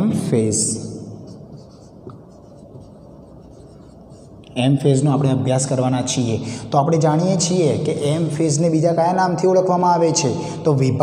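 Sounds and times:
marker writing on whiteboard: 0:00.8 - 0:04.6.

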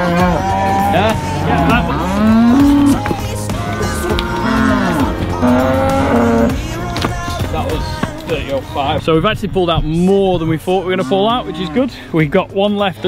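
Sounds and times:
cows mooing: 0:00.0 - 0:07.1, 0:10.6 - 0:12.1
background music: 0:00.0 - 0:13.0.

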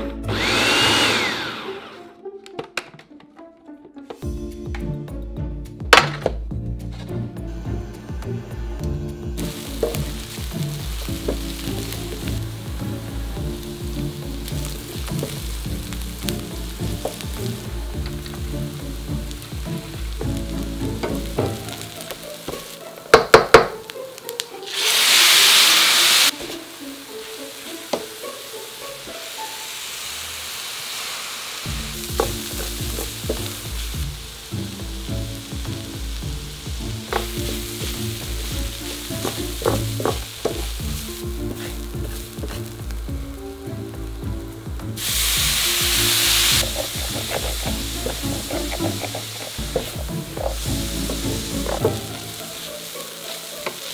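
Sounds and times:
food sizzling in a skillet: 0:00.3 - 0:01.8, 0:07.0 - 0:53.9
wooden spatula stirring: 0:36.7 - 0:43.0, 0:45.1 - 0:53.9.

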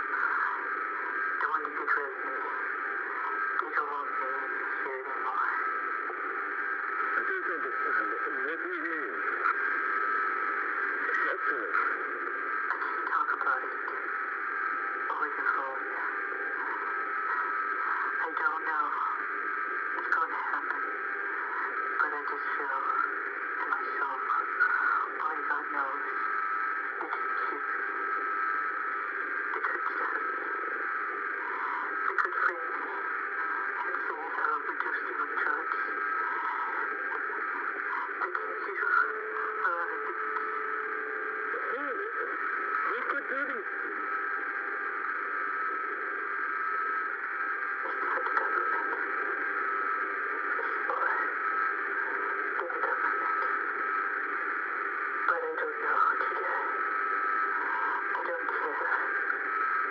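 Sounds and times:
phone line hiss: 0:00.0 - 0:59.9
voices over tinny phone line: 0:00.0 - 0:59.9.

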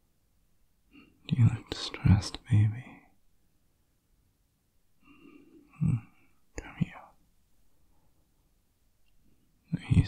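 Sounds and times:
man whispering breathily: 0:01.0 - 0:03.2, 0:05.2 - 0:07.2, 0:09.6 - 0:10.0.

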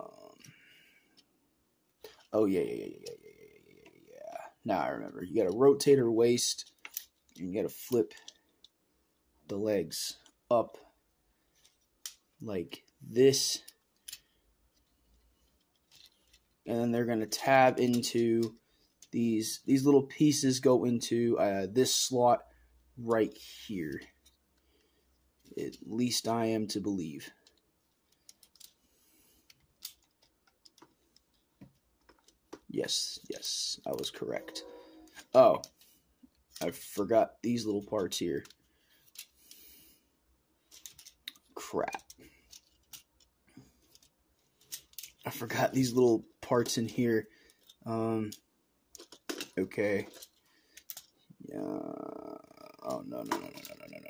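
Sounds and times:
small plastic parts clicking: 0:06.6 - 0:08.8, 0:11.5 - 0:12.2, 0:12.8 - 0:16.6, 0:17.9 - 0:19.2, 0:27.3 - 0:34.0, 0:37.7 - 0:39.8, 0:40.6 - 0:45.5, 0:46.5 - 0:51.3, 0:52.9 - 0:54.0.

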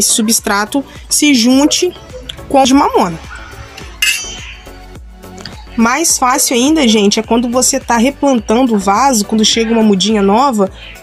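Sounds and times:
soft background music: 0:00.0 - 0:11.0
bright clink: 0:04.0 - 0:04.7.

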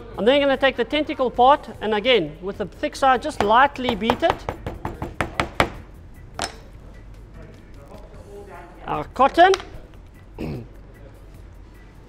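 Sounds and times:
hammer knocking on cutting board: 0:03.4 - 0:05.8.

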